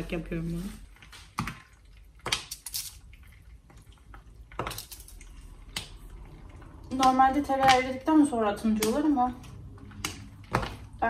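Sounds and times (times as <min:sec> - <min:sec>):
chocolate snapping: 0:01.2 - 0:03.0, 0:04.5 - 0:06.0, 0:08.6 - 0:10.9.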